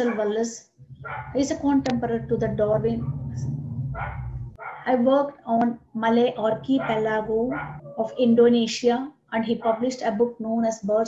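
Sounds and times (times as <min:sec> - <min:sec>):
woman speaking: 0:00.0 - 0:00.6, 0:01.4 - 0:03.5, 0:04.8 - 0:11.0
low steady hum: 0:00.8 - 0:08.5.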